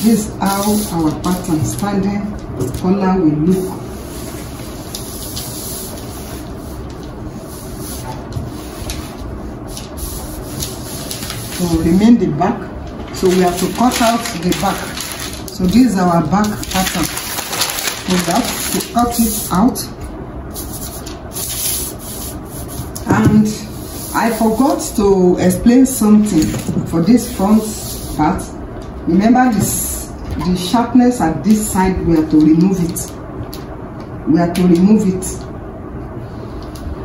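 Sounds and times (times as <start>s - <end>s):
paper rustling: 3.6s - 12.1s, 12.9s - 19.6s.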